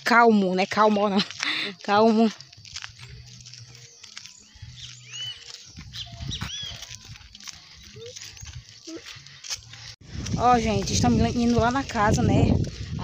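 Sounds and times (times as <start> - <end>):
footsteps on dirt road: 0.0 - 13.0
high chirping animal calls: 4.6 - 6.9.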